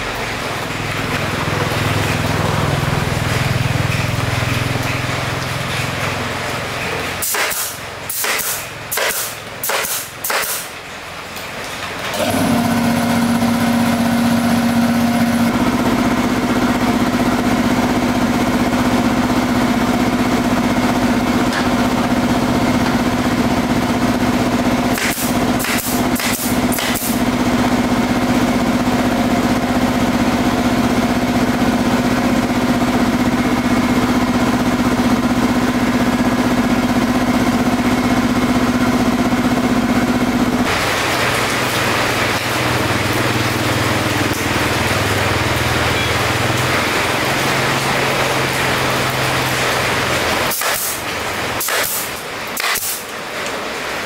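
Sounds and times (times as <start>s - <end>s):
air compressor running: 0.0s - 10.8s, 12.0s - 53.4s
staple gun pops: 7.2s - 10.7s, 50.5s - 51.0s, 51.6s - 53.0s.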